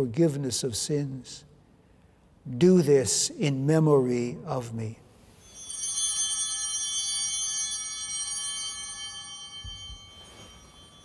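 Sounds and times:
altar bell ringing: 5.2 - 11.0.

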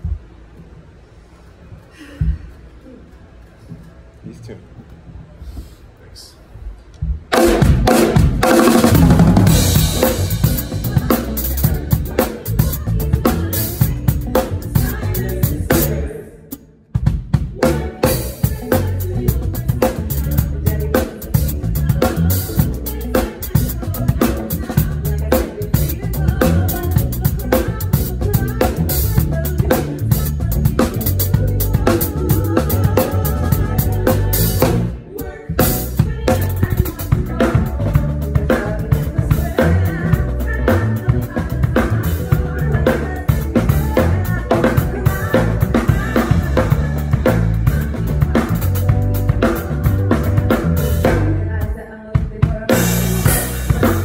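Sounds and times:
drum kit playing groove: 7.1 - 54.0
musical accompaniment: 7.3 - 54.0.

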